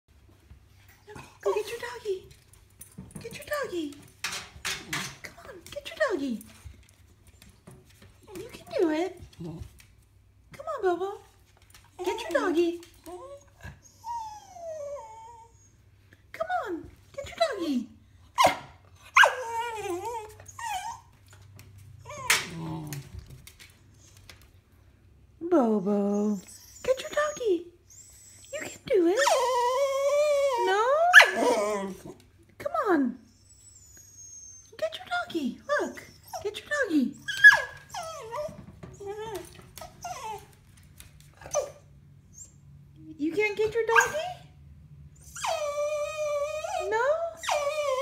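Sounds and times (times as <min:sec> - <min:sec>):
dog crying: 0:18.4 - 0:21.1, 0:26.3 - 0:32.2, 0:37.2 - 0:40.5, 0:45.2 - 0:48.0.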